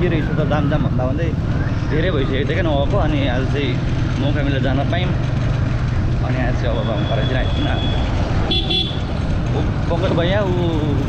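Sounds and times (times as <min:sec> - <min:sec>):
motorcycle engine rumble: 0:00.0 - 0:11.0
high-pitched vehicle horn toot: 0:07.0 - 0:09.1.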